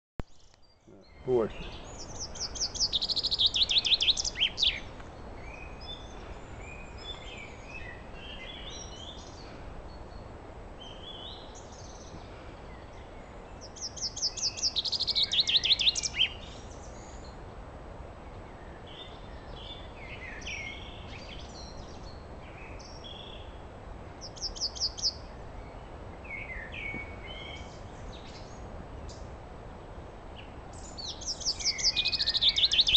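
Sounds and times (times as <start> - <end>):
songbird singing: 0.2 - 32.9
faint bird chirps: 0.3 - 17.4, 30.4 - 32.9.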